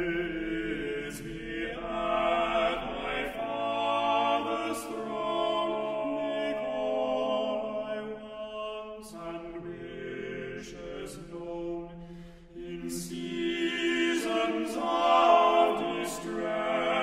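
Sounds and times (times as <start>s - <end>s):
male quartet singing a cappella: 0.0s - 17.0s.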